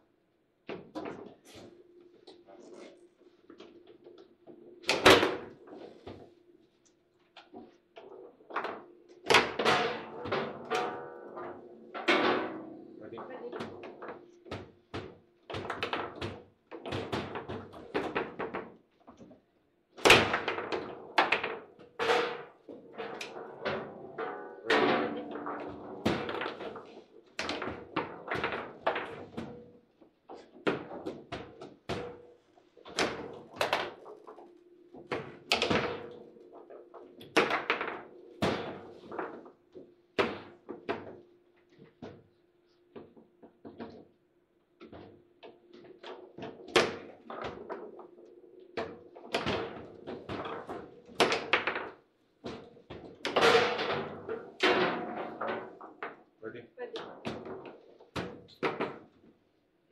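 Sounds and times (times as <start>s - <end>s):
foosball ball and rods knocking: 3.6s - 6.2s, 7.5s - 13.0s, 13.6s - 18.8s, 20.0s - 42.2s, 43.0s - 44.2s, 44.8s - 56.2s, 57.0s - 59.3s
clicks of ball and rods: 20.0s - 29.6s, 44.8s - 56.2s.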